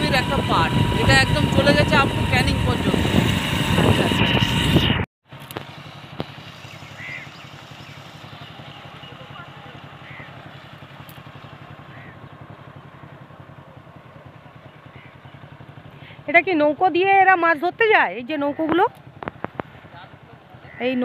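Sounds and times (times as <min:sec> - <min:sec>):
engine water pump running: 0:00.0 - 0:21.0
water gushing into pond: 0:05.6 - 0:12.2.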